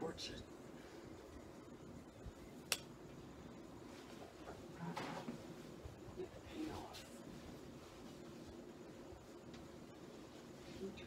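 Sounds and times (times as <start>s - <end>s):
faint handling and rustling: 3.1s - 11.0s.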